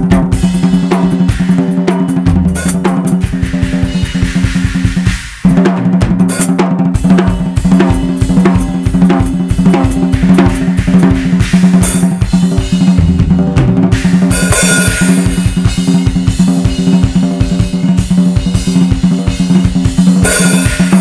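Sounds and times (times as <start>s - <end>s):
acoustic drum kit solo: 0.0s - 21.0s
cymbal crashes: 0.4s - 5.5s, 7.6s - 13.1s, 13.9s - 19.4s, 20.2s - 21.0s.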